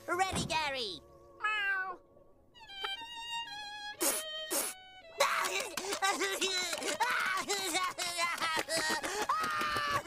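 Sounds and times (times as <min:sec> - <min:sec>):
cartoon meow with wavering pitch: 0:01.4 - 0:02.0.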